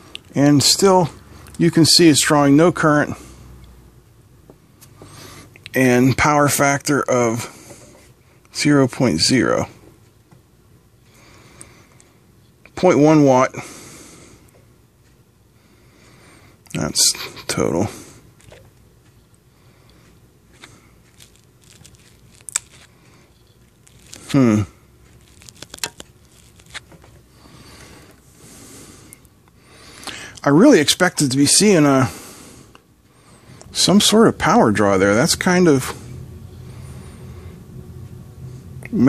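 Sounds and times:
soft rubbing handling noise: 19.9 - 28.4.

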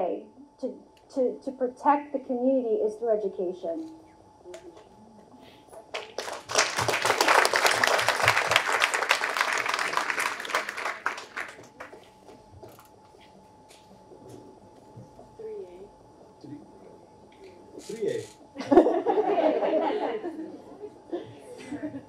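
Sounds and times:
small group applauding: 5.8 - 12.4.

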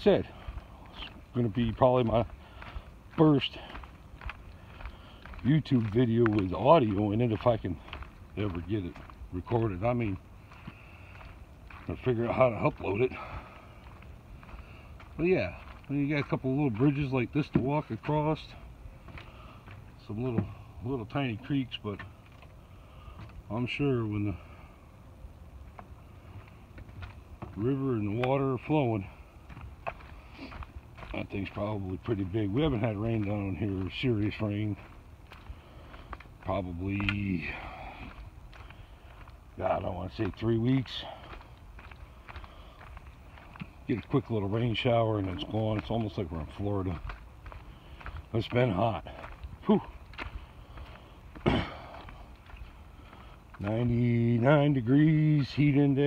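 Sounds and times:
faint footsteps: 0.0 - 56.0
low rumble of wind: 0.0 - 56.0.

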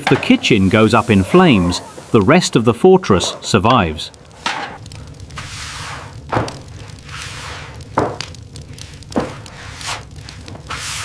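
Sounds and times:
low kitchen rumble: 0.0 - 11.0.

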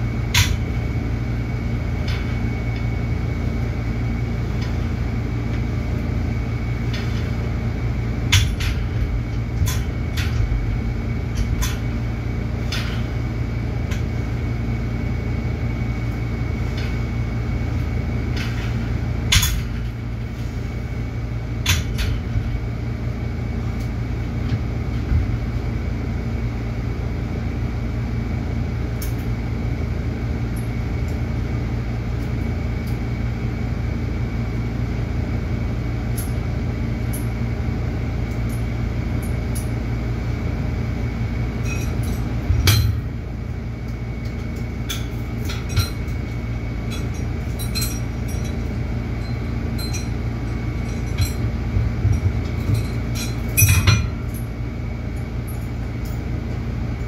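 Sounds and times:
low mechanical hum: 0.0 - 57.0
weight stack clinks and knocks: 46.9 - 54.5.

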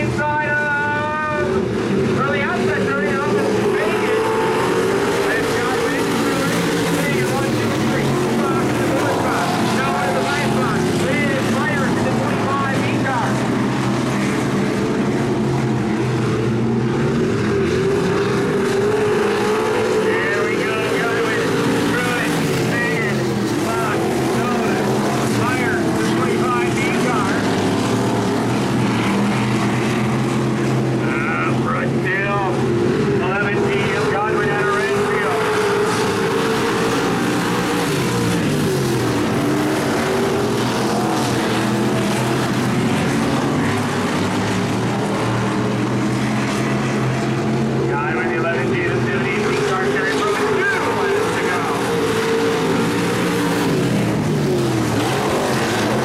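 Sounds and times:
stock car engines racing: 0.0 - 56.0.

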